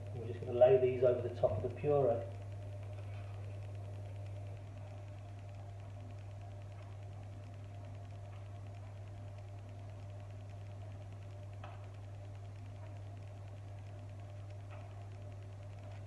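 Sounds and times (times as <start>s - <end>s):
low background hum: 0.0s - 16.0s.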